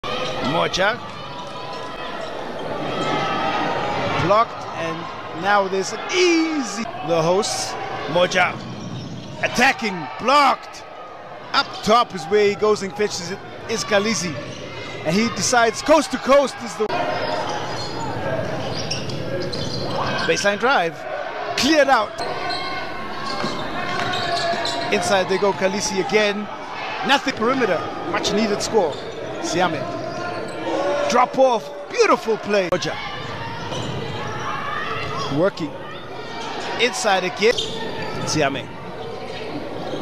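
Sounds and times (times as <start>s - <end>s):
murmur of crowd voices: 0.0s - 40.0s
shoes squeaking on court: 8.2s - 9.7s, 13.8s - 15.5s, 17.0s - 20.6s, 22.1s - 25.8s, 28.2s - 30.8s, 32.8s - 40.0s
basketball bouncing on court: 8.5s - 9.4s, 23.3s - 24.9s.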